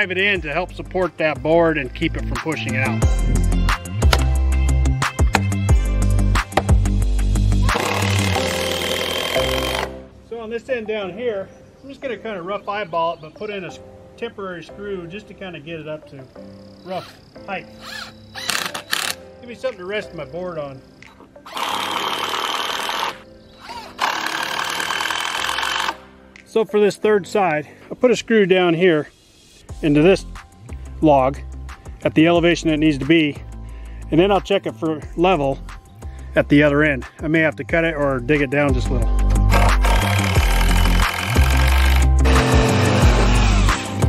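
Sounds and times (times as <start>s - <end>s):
background music with steady beat: 0.0s - 21.9s, 22.6s - 44.0s
cordless drill whining: 7.7s - 10.0s, 17.8s - 19.2s, 21.4s - 26.0s, 39.4s - 44.0s.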